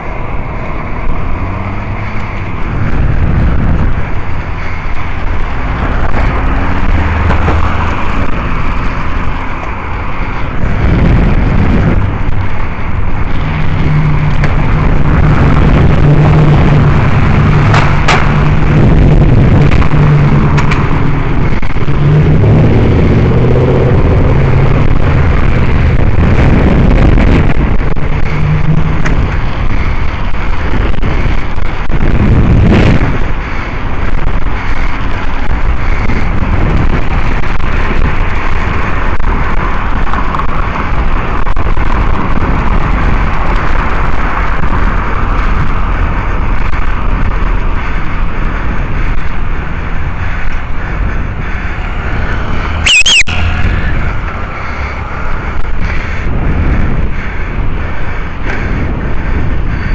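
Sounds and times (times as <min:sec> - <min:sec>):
engine drone: 0:00.0 - 0:59.9
road traffic: 0:00.0 - 0:59.9
vehicle passing: 0:00.0 - 0:59.9
wind on microphone: 0:00.0 - 0:59.9.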